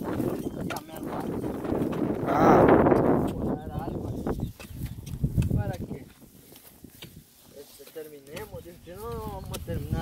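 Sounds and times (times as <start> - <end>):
digging tool striking dry soil: 0.0 - 10.0.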